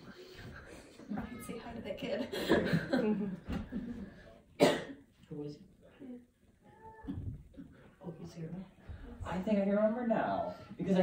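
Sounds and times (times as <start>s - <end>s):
person coughing: 4.6s - 5.0s.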